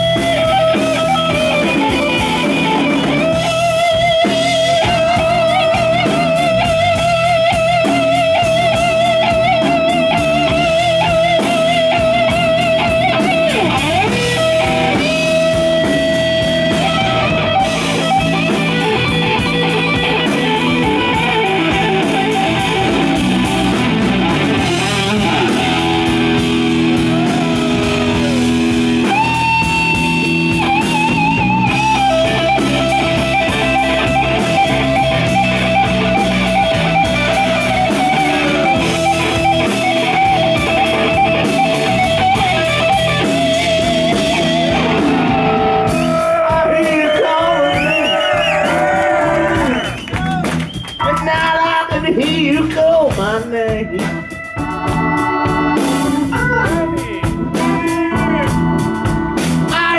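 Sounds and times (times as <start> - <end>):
electric guitar solo with vibrato: 0.0 - 50.5
bass guitar: 0.0 - 59.9
drums: 0.0 - 59.9.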